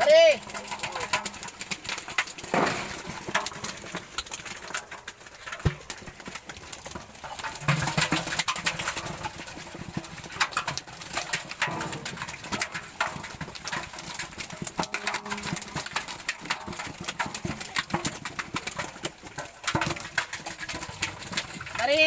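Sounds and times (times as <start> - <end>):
fish splashing in metal pots: 0.0 - 22.0.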